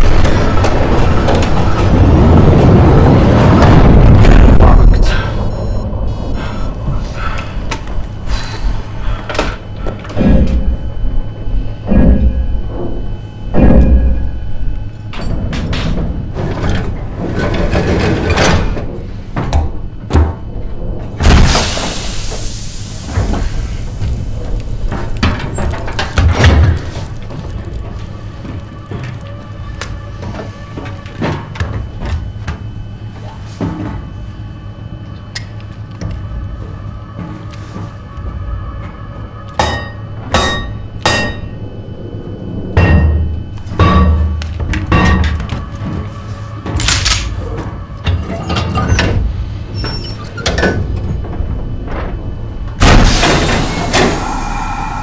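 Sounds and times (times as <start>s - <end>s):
film score: 0.0s - 55.0s
steady low hum: 0.0s - 55.0s
metal clanks and thuds: 9.3s - 11.0s, 11.8s - 14.5s, 42.7s - 54.2s
loud hiss of air: 21.4s - 24.1s, 53.0s - 55.0s.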